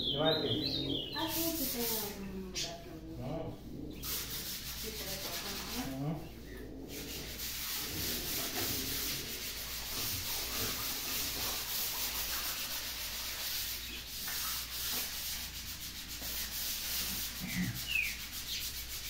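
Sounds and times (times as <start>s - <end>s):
sandpaper rubbing on wall: 0.2s - 2.8s, 3.8s - 19.0s.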